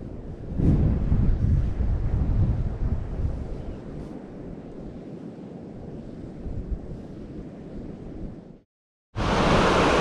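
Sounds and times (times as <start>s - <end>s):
wind buffeting microphone: 0.0s - 8.6s.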